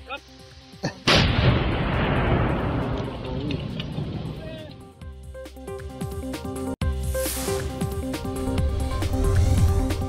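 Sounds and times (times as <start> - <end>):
explosion with long rumble: 1.1 - 4.4.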